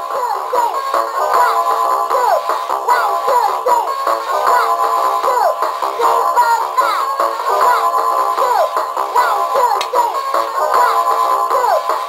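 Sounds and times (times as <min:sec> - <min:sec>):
synthesized female voice counting: 0:05.2 - 0:10.2.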